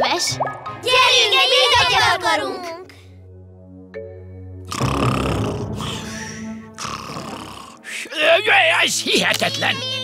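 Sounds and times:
background music: 0.0 - 10.0
cartoon snoring: 4.7 - 7.9.

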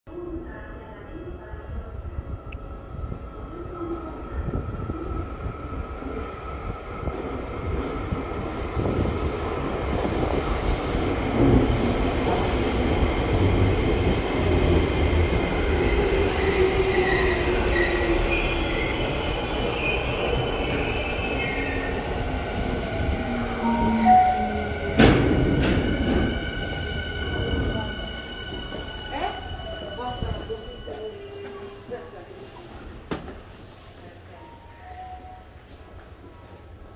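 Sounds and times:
train wheel noise: 8.4 - 34.2.

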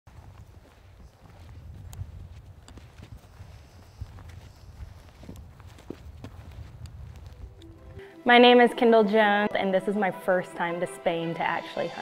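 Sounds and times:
footsteps on stony ground: 0.1 - 8.1.

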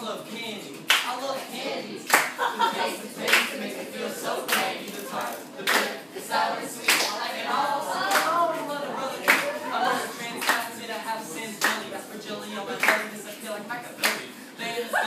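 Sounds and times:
audience clapping in rhythm: 0.8 - 1.1, 2.0 - 2.4, 3.2 - 3.8, 4.4 - 6.1, 6.8 - 7.3, 8.0 - 9.6, 10.4 - 10.8, 11.6 - 12.0, 12.7 - 13.2, 14.0 - 14.3
people singing along: 1.0 - 15.0.

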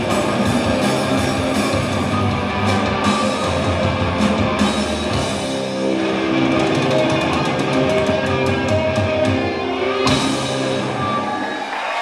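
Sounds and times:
drum and cymbal hits: 0.0 - 9.4, 10.0 - 11.4
live rock band playing: 0.0 - 11.8.

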